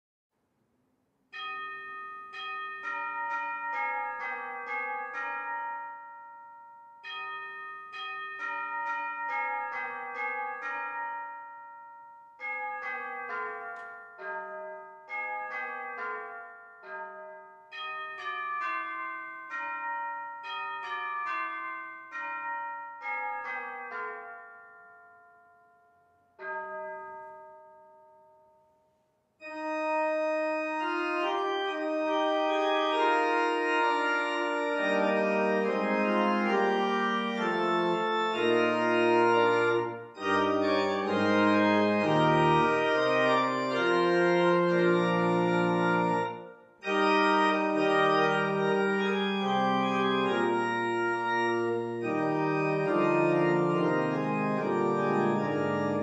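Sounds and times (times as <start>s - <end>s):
bells chiming: 1.3s - 28.6s, 29.4s - 56.0s.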